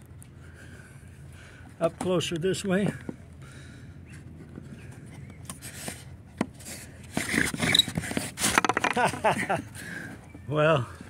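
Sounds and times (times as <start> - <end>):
wooden spindle scraping: 4.9 - 9.4.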